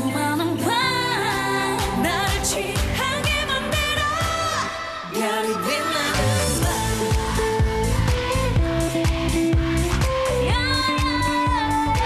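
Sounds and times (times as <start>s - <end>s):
pop backing track: 0.0s - 12.0s
women singing into microphones: 0.0s - 12.0s.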